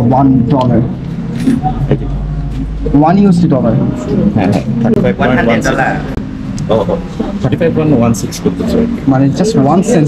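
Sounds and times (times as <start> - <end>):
passing vehicle rumble: 0.0 - 10.0.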